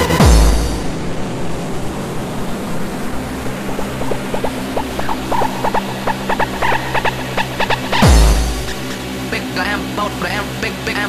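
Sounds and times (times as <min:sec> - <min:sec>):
held low synth tone: 0:00.0 - 0:01.2
short synth stabs: 0:00.0 - 0:01.2, 0:04.1 - 0:09.0
noise wash: 0:00.0 - 0:11.0.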